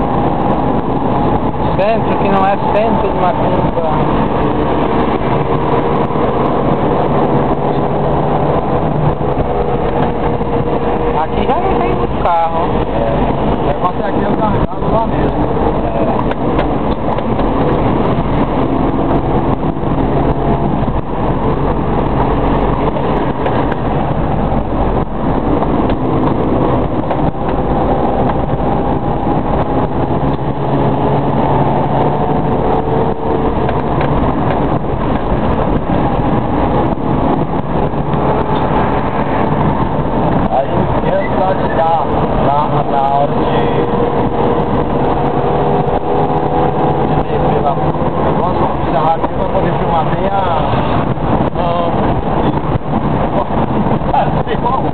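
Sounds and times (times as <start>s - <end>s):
car engine from inside cabin: 0.0s - 54.9s
road noise: 0.0s - 54.9s.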